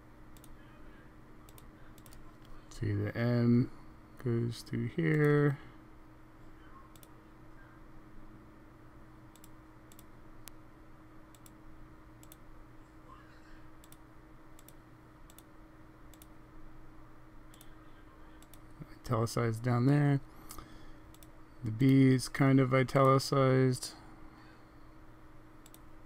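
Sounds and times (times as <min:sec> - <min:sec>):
computer mouse clicks: 0:00.4 - 0:00.6, 0:01.5 - 0:02.6, 0:06.9 - 0:07.2, 0:09.3 - 0:10.6, 0:11.3 - 0:11.6, 0:12.2 - 0:12.4, 0:13.8 - 0:14.0, 0:14.6 - 0:15.5, 0:16.1 - 0:16.3, 0:20.5 - 0:22.0, 0:25.6 - 0:25.9.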